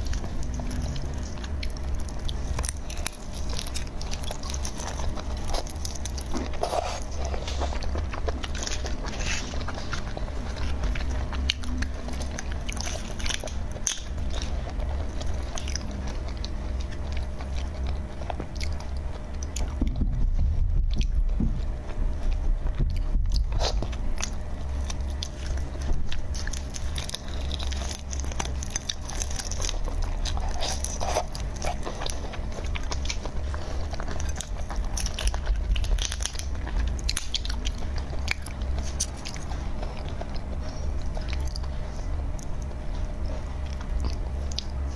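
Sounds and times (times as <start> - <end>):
biting and chewing: 0.0 - 44.9.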